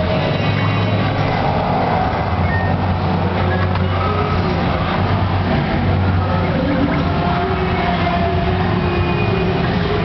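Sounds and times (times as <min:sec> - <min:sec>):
faint electronic beeps: 0:02.3 - 0:04.4.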